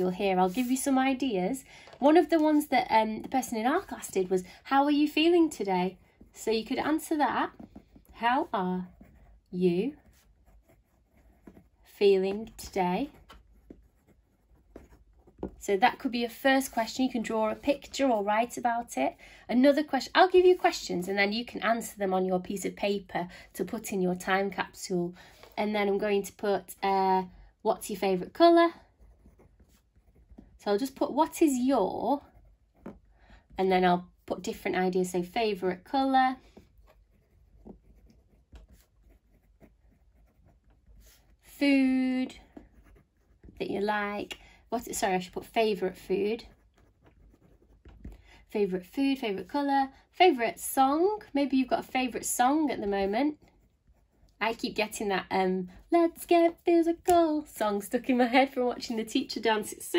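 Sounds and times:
pen scratching on paper: 2.0s - 18.8s, 28.0s - 33.0s, 34.8s - 48.1s, 49.0s - 55.0s.

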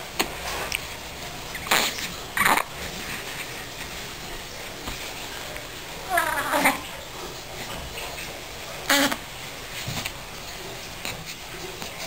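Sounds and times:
newborn baby squealing: 6.1s - 6.9s.

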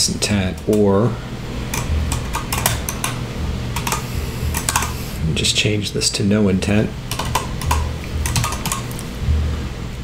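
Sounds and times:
keyboard keys clicking: 1.7s - 3.2s, 3.8s - 5.0s, 7.1s - 9.0s.

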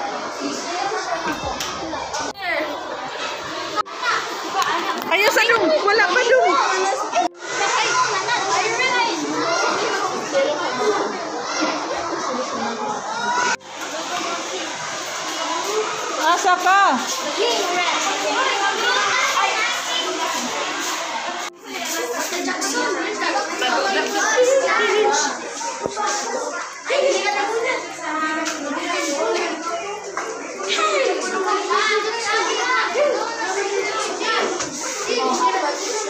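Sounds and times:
children chattering: 0.0s - 36.0s.

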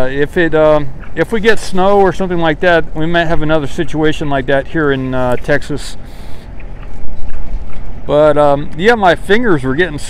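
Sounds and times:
low steady rumbling: 0.0s - 10.0s.

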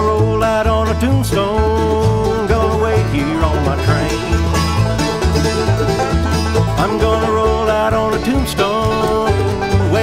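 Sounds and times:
person singing: 0.0s - 5.4s, 6.6s - 10.0s
acoustic guitar: 0.0s - 10.0s
banjo: 0.0s - 10.0s
mandolin: 0.0s - 10.0s
upright bass: 0.0s - 10.0s.

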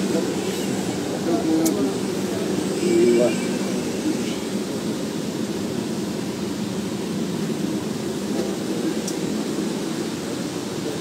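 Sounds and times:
bus cabin rumble: 0.0s - 11.0s.

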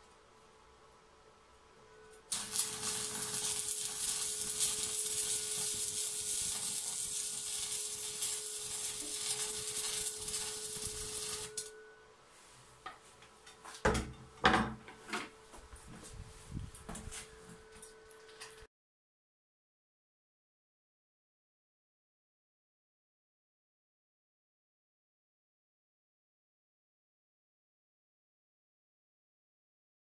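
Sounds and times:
welding arc crackling and hissing: 2.3s - 11.7s.

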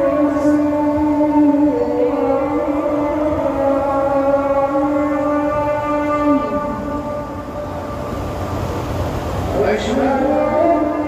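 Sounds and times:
call to prayer over loudspeakers: 0.0s - 11.0s.

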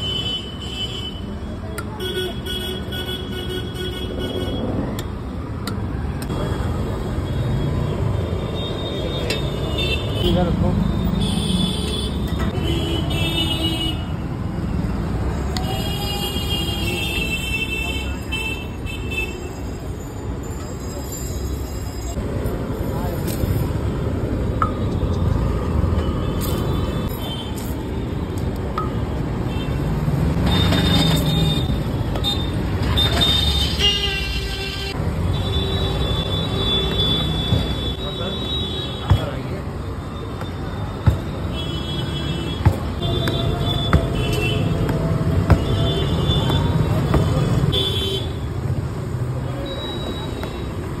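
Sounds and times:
street traffic: 0.0s - 51.0s
engine and road rumble: 1.2s - 51.0s.

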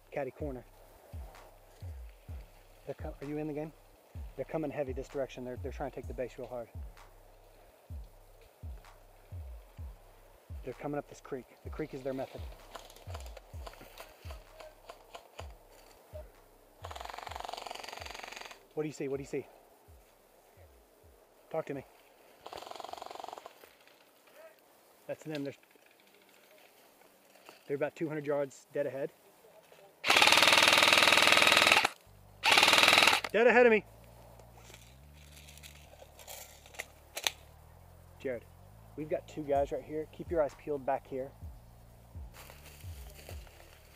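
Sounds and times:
footsteps crunching through dry leaves: 0.6s - 17.4s, 33.9s - 37.5s, 41.6s - 43.9s
airsoft gunfire rattle: 30.1s - 33.3s
rifle handling clicks: 34.6s - 37.4s.

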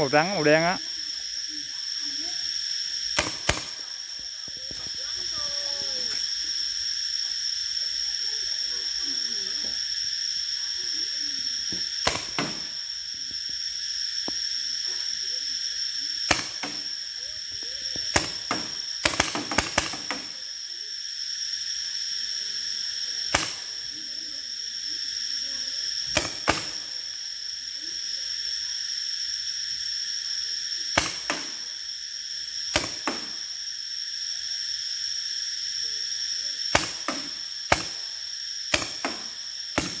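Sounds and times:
high-pitched insect drone: 0.0s - 40.0s.

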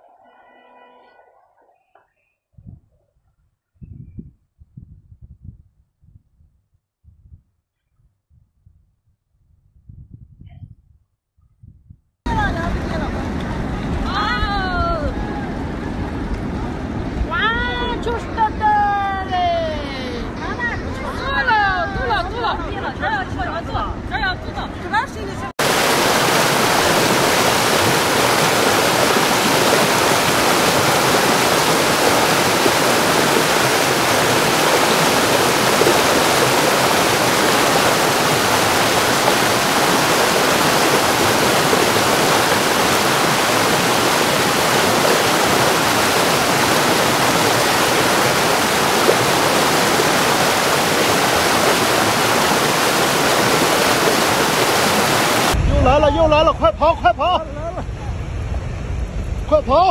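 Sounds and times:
debris flow rushing: 25.6s - 55.6s.

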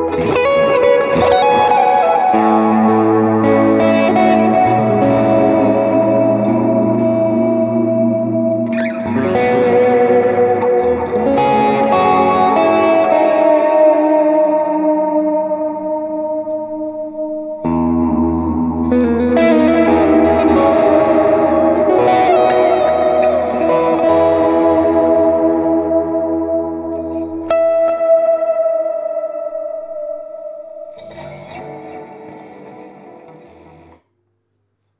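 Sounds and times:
electric guitar chords strummed: 0.0s - 34.0s.

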